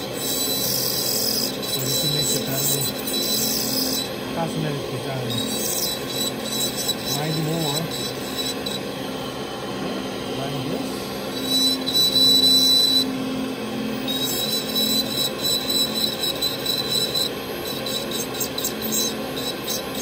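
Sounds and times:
dental handpiece high whine grinding: 0.0s - 20.0s.

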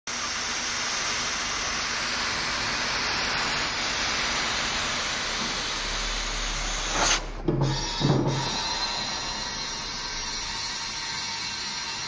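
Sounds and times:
rushing air hiss: 0.2s - 11.9s.

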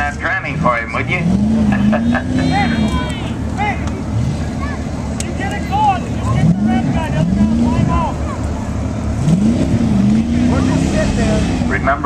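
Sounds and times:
car engines revving: 0.0s - 12.0s
continuous low rumble: 0.0s - 12.0s.

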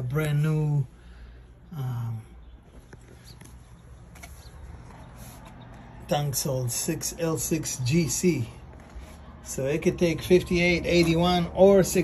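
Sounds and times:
soft rustles: 2.6s - 5.8s.

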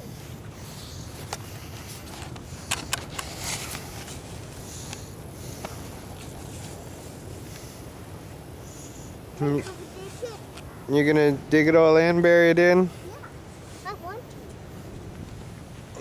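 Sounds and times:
wind: 0.0s - 16.0s.

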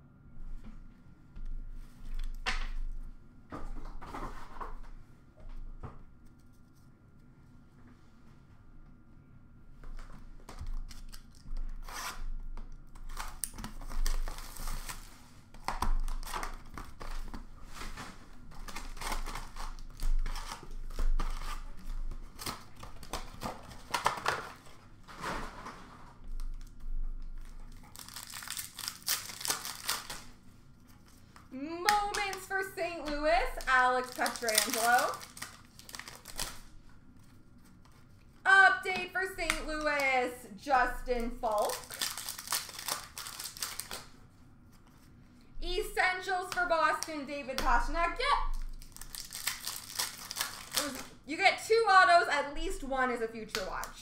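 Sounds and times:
card wrappers tearing and crinkling: 10.6s - 12.3s, 12.9s - 24.8s, 27.4s - 30.4s, 31.0s - 37.9s, 41.2s - 44.2s, 48.4s - 51.2s
cards being handled: 30.9s - 38.3s, 41.5s - 44.1s
person speaking: 31.5s - 35.2s, 38.5s - 41.9s, 45.6s - 48.6s.

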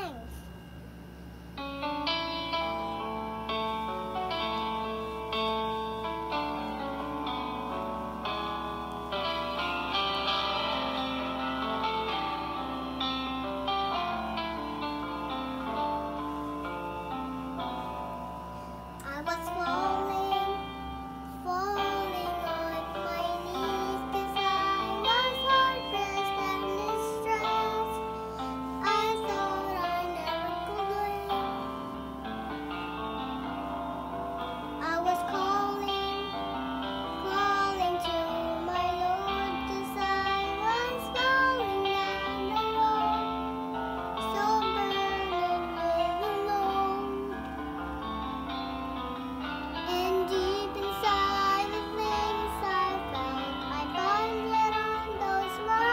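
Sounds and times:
girl singing: 0.0s - 0.5s, 19.0s - 31.9s, 34.8s - 43.6s, 44.2s - 47.6s, 49.8s - 55.9s.

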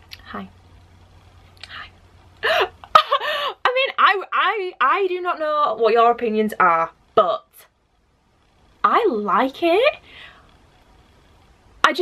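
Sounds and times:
soft breath: 10.0s - 10.6s.

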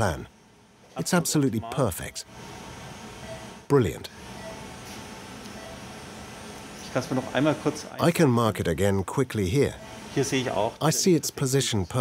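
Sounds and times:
ventilation hum: 0.0s - 12.0s
monitor beeps: 1.7s - 6.1s, 9.6s - 10.6s.

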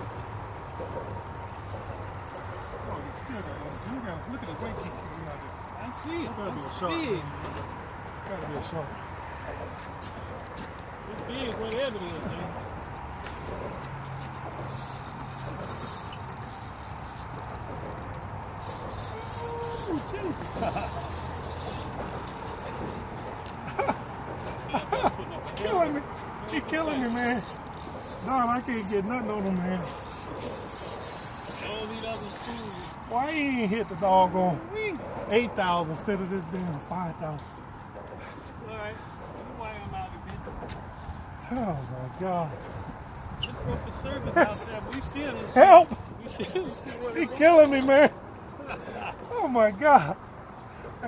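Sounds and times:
wind: 0.0s - 51.0s.

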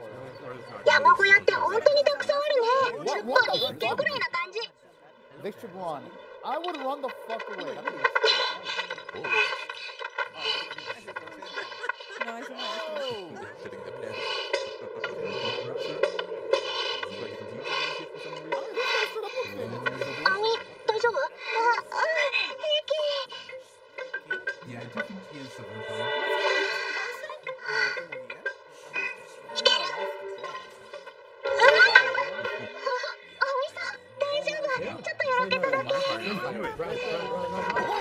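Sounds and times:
person speaking: 10.3s - 16.1s, 16.8s - 20.7s.

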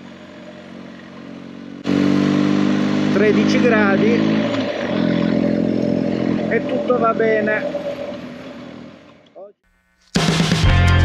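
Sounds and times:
motorcycle engine: 0.0s - 10.8s
brief warbling tone: 5.4s - 8.7s.

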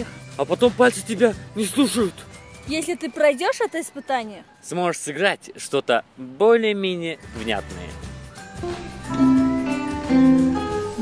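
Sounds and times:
classical guitars playing slow melody: 8.6s - 11.0s.

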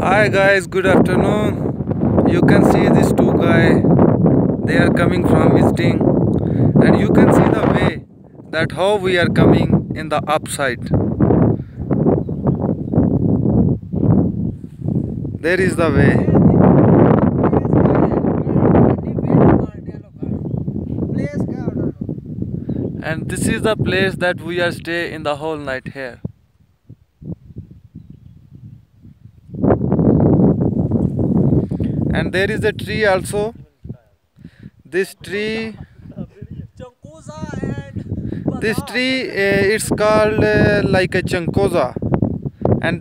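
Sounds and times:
wind rumble on microphone: 0.0s - 43.0s.

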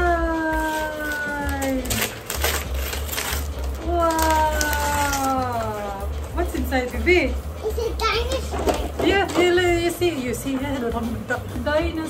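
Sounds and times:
paper crinkling and rustling: 0.6s - 6.0s.

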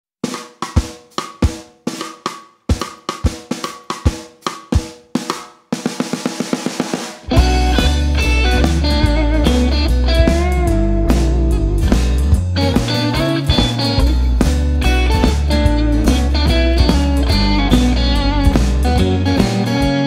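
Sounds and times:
drum kit beat: 0.2s - 20.0s
bass and guitars: 7.2s - 20.0s.

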